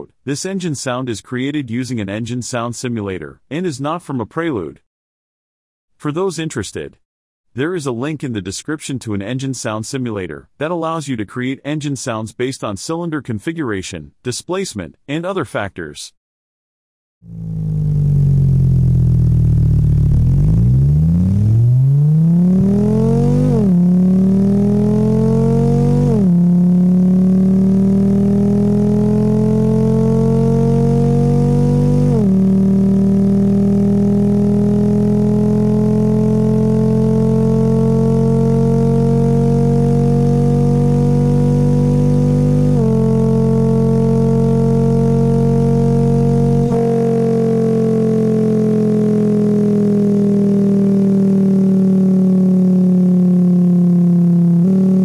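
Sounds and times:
synthesized engine revving: 0:17.2 - 0:55.0.

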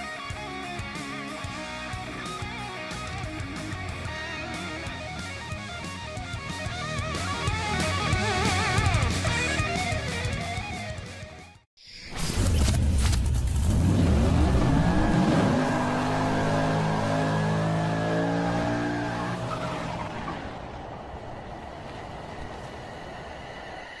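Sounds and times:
tyres spinning and squealing: 0:12.0 - 0:21.6
car engine revving: 0:13.4 - 0:21.3.

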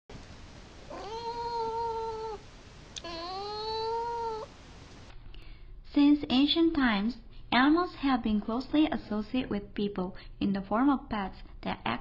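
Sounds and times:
cat meowing: 0:00.9 - 0:04.5.

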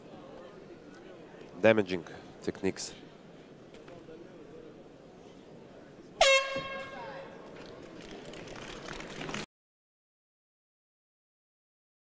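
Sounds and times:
loud horn note: 0:06.2 - 0:07.1.

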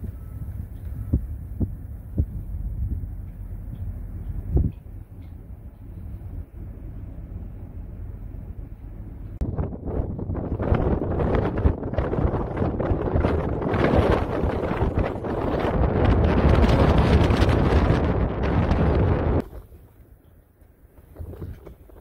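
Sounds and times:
strong wind buffeting microphone: 0:00.0 - 0:20.1, 0:20.9 - 0:22.0.

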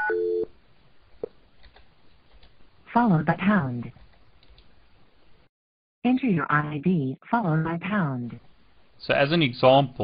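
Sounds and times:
lower two-note telephone tone: 0:00.0 - 0:00.5.

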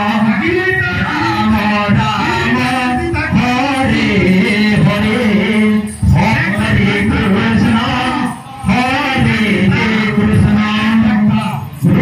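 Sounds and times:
devotional singing: 0:00.0 - 0:12.0.

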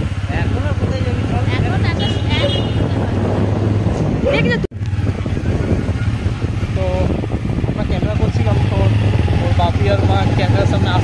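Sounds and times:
motorcycle engine running: 0:00.0 - 0:11.0
wind and road noise: 0:00.0 - 0:11.0.

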